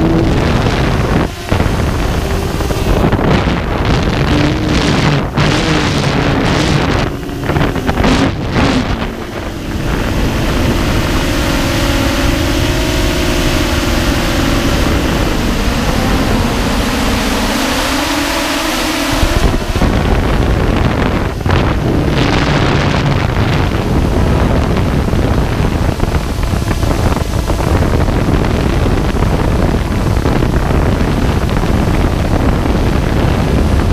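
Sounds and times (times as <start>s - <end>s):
drone propellers humming: 0.0s - 33.9s
wind buffeting microphone: 0.0s - 33.9s.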